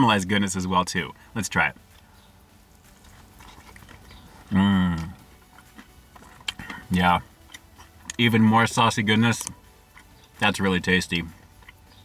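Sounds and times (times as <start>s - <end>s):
biting and chewing food: 1.2s - 12.0s
mouth clicks: 3.0s - 8.3s.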